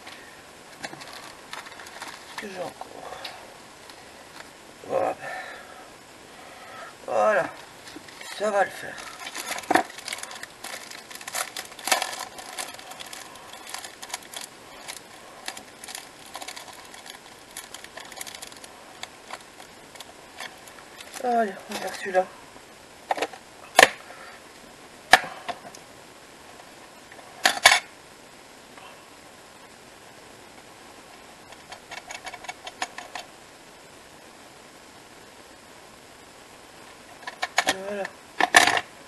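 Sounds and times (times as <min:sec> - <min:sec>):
plastic packet rustling and tapping: 0:00.8 - 0:02.6, 0:09.0 - 0:22.0.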